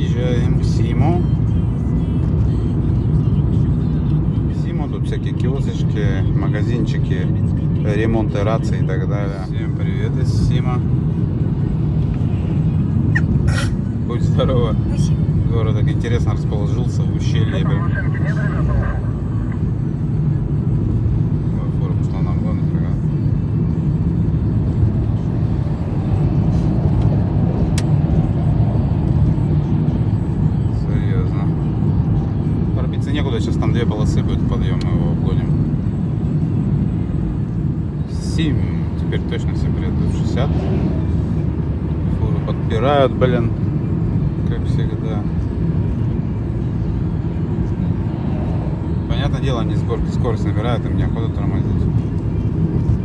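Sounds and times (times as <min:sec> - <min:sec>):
car tyre and engine rumble: 0:00.0 - 0:53.0.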